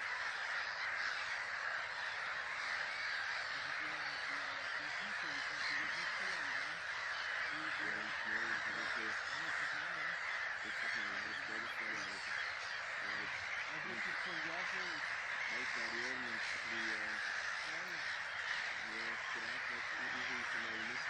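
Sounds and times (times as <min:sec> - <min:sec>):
flock of geese honking: 0:00.0 - 0:21.0.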